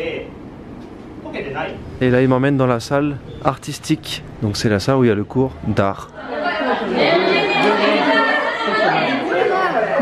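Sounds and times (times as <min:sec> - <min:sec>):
girls chattering: 0:06.1 - 0:10.0.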